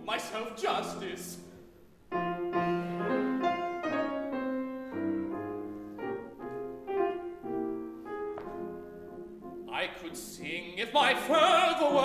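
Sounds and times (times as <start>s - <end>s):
grand piano chords: 0.0s - 12.0s.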